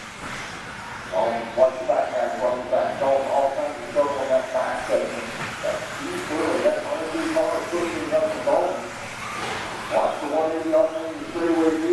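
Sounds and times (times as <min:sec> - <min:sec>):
electric model car motors whining: 0:00.0 - 0:11.9.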